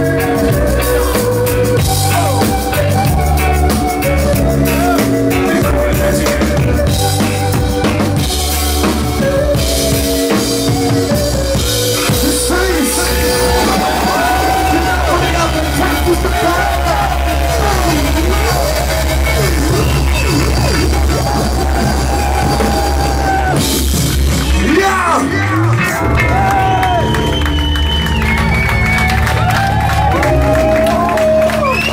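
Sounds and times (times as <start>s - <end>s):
vocals: 0.0s - 7.6s, 12.0s - 23.8s, 24.4s - 26.8s
crowd cheering: 0.0s - 31.9s
heavy bass line: 0.0s - 31.9s
reggae dancehall band playing: 0.0s - 31.9s.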